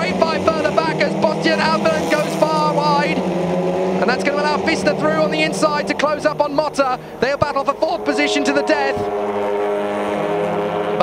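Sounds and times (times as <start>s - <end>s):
car engines at high revs: 0.0s - 11.0s.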